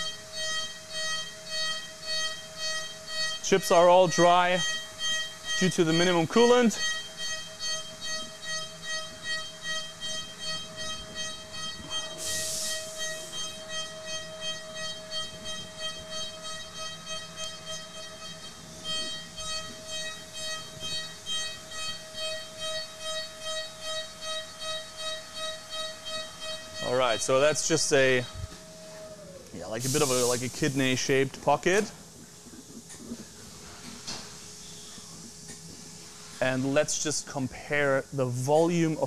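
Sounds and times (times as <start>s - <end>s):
milling spindle high whine: 0.0s - 39.0s
brief hiss: 12.0s - 13.5s, 29.7s - 31.2s.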